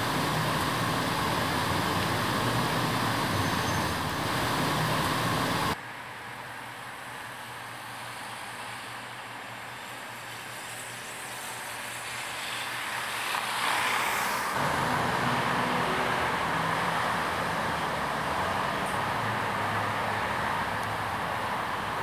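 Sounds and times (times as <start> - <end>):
steady hiss: 0.0 - 5.8
street traffic hum: 0.0 - 22.0.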